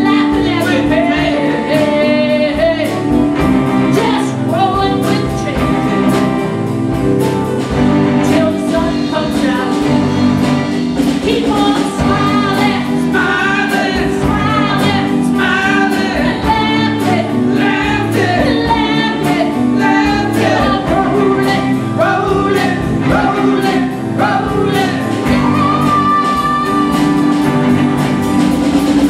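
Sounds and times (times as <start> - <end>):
voices singing together: 0.0 - 3.2, 11.0 - 28.3
guitars and keyboard: 0.0 - 29.0
steady drum beat: 0.0 - 29.0.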